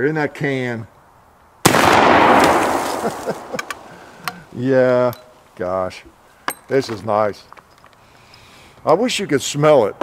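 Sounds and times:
rifle shot with echo: 0:01.6 - 0:04.2.

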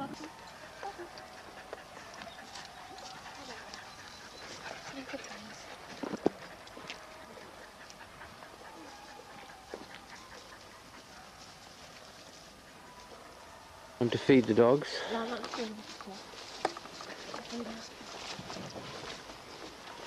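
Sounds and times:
dogs whining and yipping: 0:00.0 - 0:11.3
faint voices: 0:00.0 - 0:20.0.

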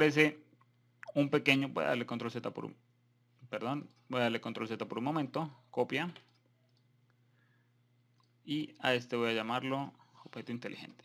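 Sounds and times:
person speaking: 0:00.0 - 0:07.0, 0:08.0 - 0:11.0
faint steady hum: 0:00.0 - 0:11.0
computer mouse clicks: 0:06.1 - 0:07.2.

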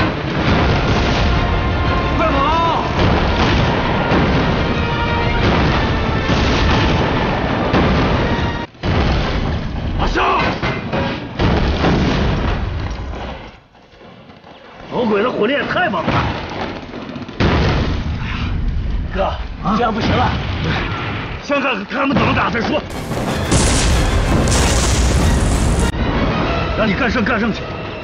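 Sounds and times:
gunfire: 0:00.0 - 0:01.7, 0:02.9 - 0:09.6, 0:22.9 - 0:25.9
dramatic background music: 0:00.0 - 0:10.0, 0:22.9 - 0:28.0
explosions: 0:00.0 - 0:10.0, 0:11.4 - 0:12.9, 0:22.9 - 0:26.3
mortar fire: 0:00.0 - 0:14.2, 0:16.0 - 0:21.4, 0:22.9 - 0:26.4.

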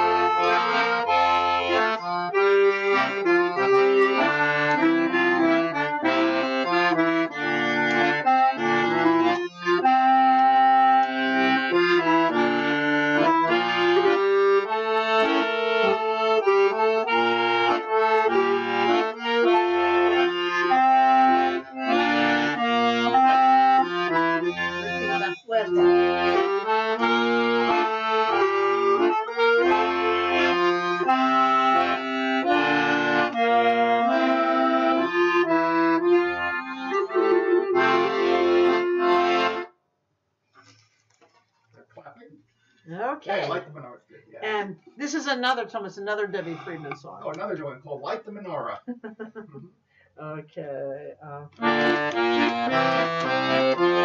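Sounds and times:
clarinet: 0:00.0 - 0:39.7, 0:51.2 - 0:54.0
piano accordion melody: 0:00.0 - 0:39.8, 0:44.4 - 0:48.8, 0:51.2 - 0:54.0.

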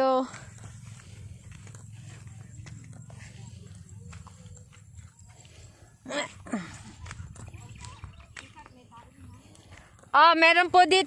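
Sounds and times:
footsteps through wet grass: 0:00.1 - 0:05.8.

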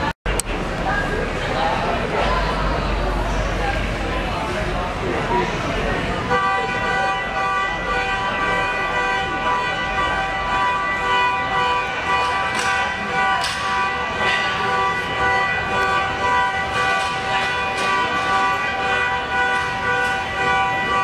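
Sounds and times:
indoor crowd chatter: 0:00.0 - 0:21.0.

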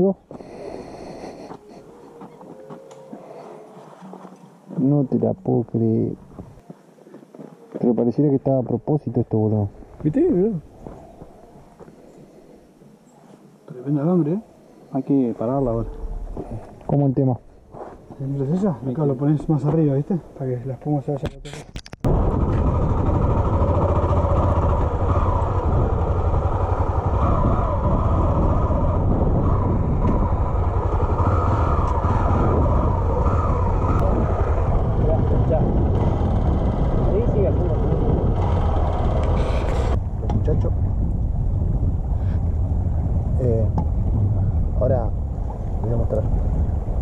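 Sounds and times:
wind rush on microphone: 0:22.0 - 0:47.0
motorcycle engine rumble: 0:22.1 - 0:47.0.

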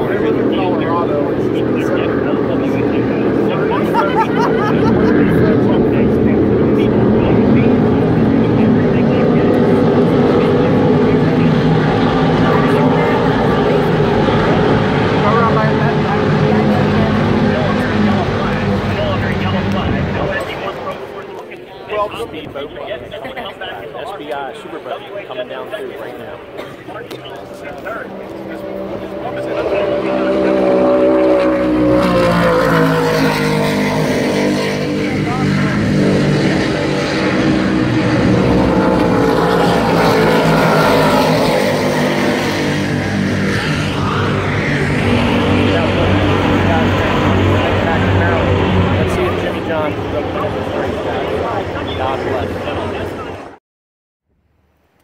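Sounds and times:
race boat engines at speed: 0:00.0 - 0:53.6.

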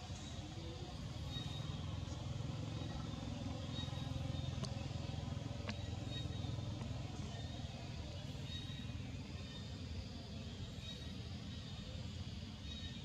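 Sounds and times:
vehicle engine rumbling: 0:00.0 - 0:13.0.

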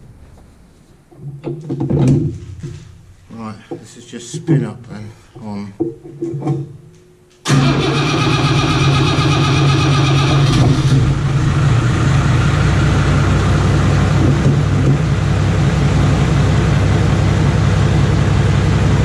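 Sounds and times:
diesel engine starting up: 0:07.4 - 0:19.0
high-pitched engine whine: 0:07.5 - 0:19.0.

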